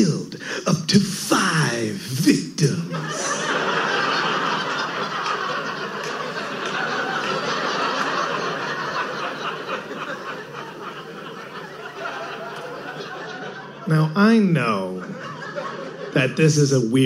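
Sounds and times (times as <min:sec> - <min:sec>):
audience laughing: 0:00.0 - 0:17.0.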